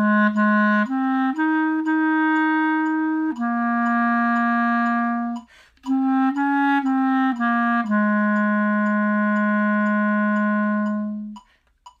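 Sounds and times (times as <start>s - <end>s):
clarinet long low note: 0.0s - 11.4s
click track ticking: 0.0s - 12.0s.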